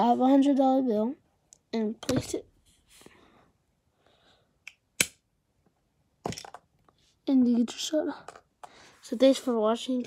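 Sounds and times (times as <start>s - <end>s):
plastic brick dropping: 6.2s - 6.7s.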